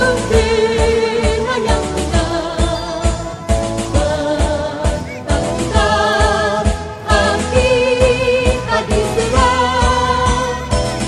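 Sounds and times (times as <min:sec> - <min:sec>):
person singing with vibrato: 0:00.0 - 0:11.0.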